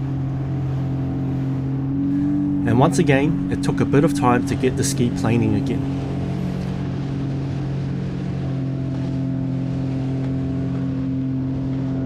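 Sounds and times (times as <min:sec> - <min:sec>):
jet ski engine running: 0:00.0 - 0:12.0
water rushing past hull: 0:00.0 - 0:12.0.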